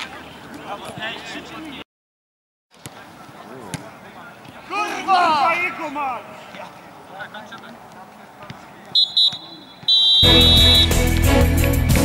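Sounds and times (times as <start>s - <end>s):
referee's whistle blasts: 8.9s - 11.0s
loud music: 10.2s - 12.0s.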